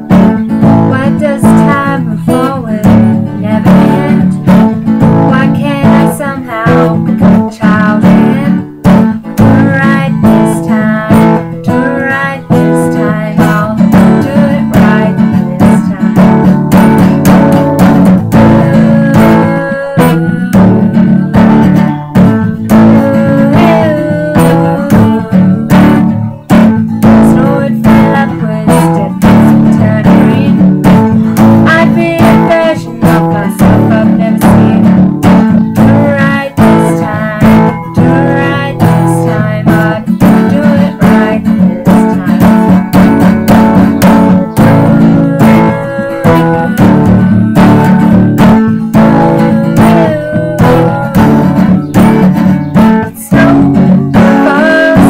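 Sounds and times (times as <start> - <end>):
acoustic guitar strumming: 0.0 - 55.0
woman singing a ballad: 0.0 - 55.0.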